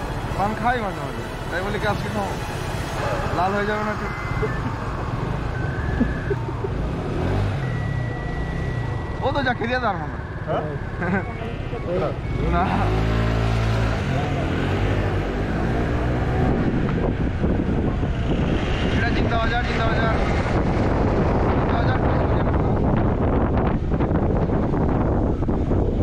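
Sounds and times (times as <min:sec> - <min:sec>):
scooter engine: 0:00.0 - 0:16.2
voices talking: 0:00.0 - 0:16.2
street traffic: 0:00.0 - 0:26.0.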